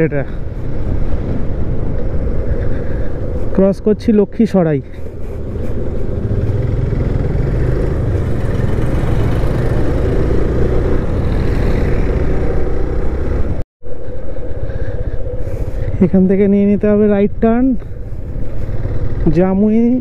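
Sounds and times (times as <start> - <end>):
wind noise: 0.0 - 20.0
motorcycle engine running: 5.4 - 13.6, 17.8 - 20.0.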